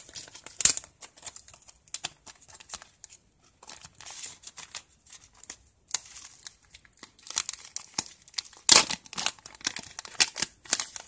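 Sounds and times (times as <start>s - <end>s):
plastic and foil packets crinkling: 0.0s - 11.0s.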